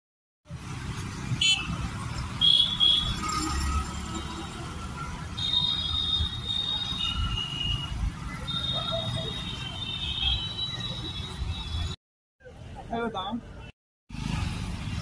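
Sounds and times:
passing vehicles rumble: 0.5s - 12.9s, 13.5s - 15.0s.

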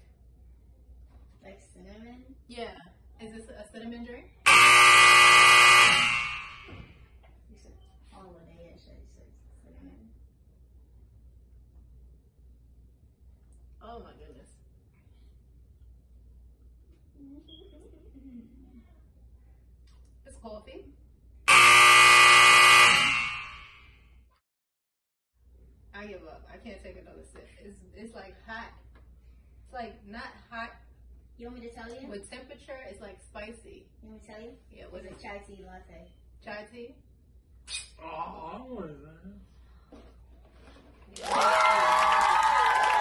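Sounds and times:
game show buzzer: 4.5s - 6.9s, 21.5s - 23.9s.

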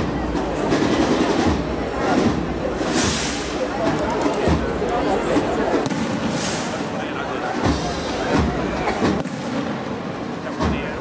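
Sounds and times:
many people talking: 0.0s - 11.0s.

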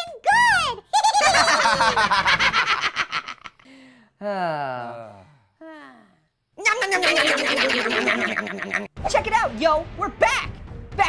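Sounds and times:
sped-up cartoon voice laughing: 6.6s - 8.9s.

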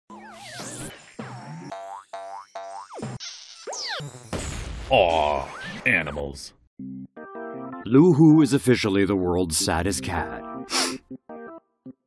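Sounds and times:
rising cartoon boings: 0.1s - 5.8s.

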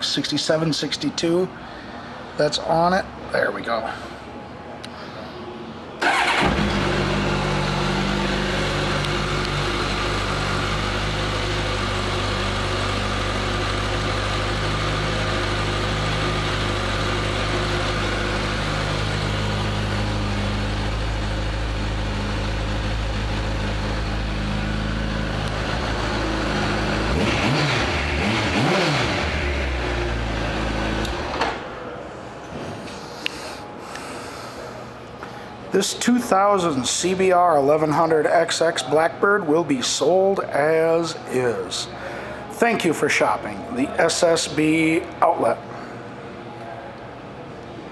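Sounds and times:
motorcycle engine revving: 6.0s - 31.4s
motorcycle engine starting and idling: 6.0s - 31.8s.

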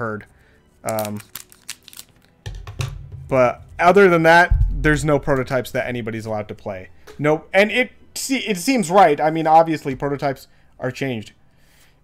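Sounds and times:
low steady hum: 4.5s - 8.2s.

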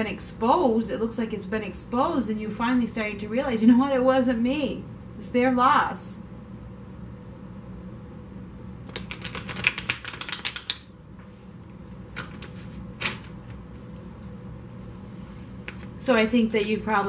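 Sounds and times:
faint room hum: 0.0s - 17.0s.

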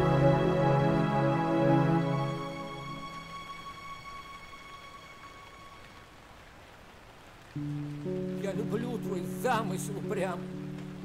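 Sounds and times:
background music: 0.0s - 6.2s, 7.6s - 11.0s
faint rain hiss: 0.0s - 11.0s.

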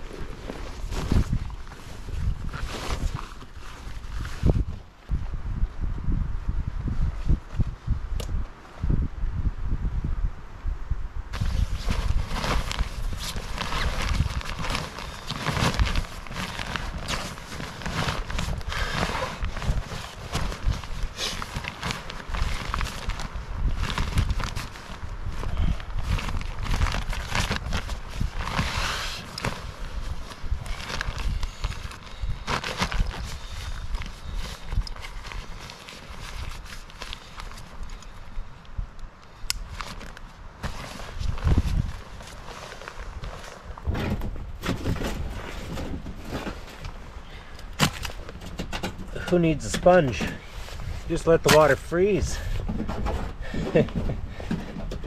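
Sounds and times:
inflatable pad crinkling: 0.0s - 4.8s, 11.3s - 38.0s, 39.6s - 43.9s
nylon sack rustling: 0.0s - 4.8s, 11.3s - 37.9s, 39.6s - 48.4s, 49.1s - 52.6s
knocks and shuffles on ground: 11.3s - 38.0s, 39.6s - 55.0s.

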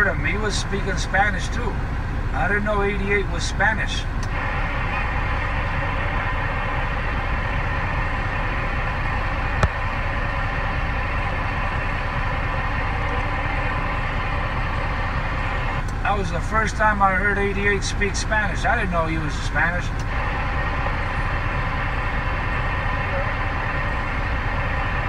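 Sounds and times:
rushing noise inside vehicle cab: 0.0s - 25.0s.

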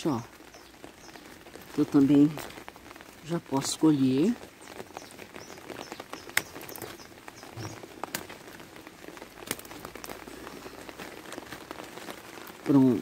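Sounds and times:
light rain falling: 0.0s - 13.0s.

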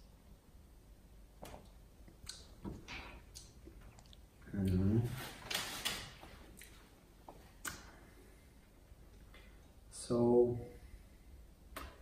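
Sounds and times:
mouth clicks: 2.2s - 2.6s.

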